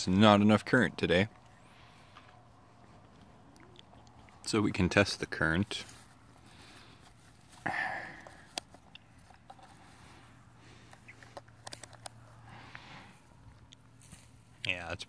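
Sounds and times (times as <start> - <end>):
handling noise: 5.8 - 14.5.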